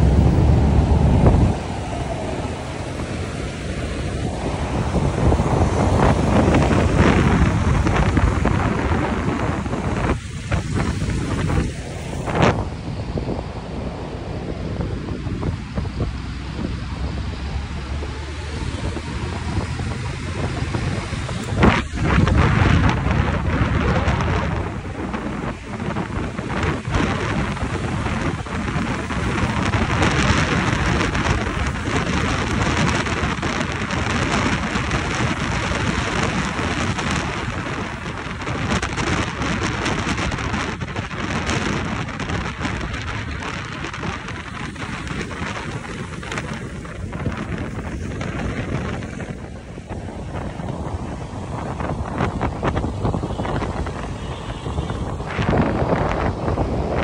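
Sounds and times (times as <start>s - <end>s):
road and traffic noise: 0.0s - 57.0s
wind rushing over microphone: 0.0s - 57.0s.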